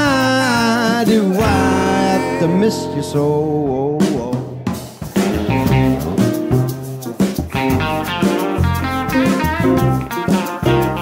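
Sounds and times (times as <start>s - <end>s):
drum kit: 0.0s - 11.0s
electric guitar lead: 0.0s - 11.0s
piano: 0.0s - 11.0s
upright bass: 0.0s - 11.0s.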